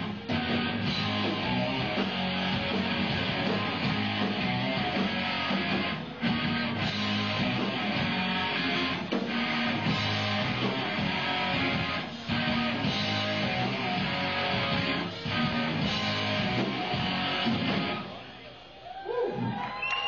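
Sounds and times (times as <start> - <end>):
live rock band playing: 0.0 - 18.2.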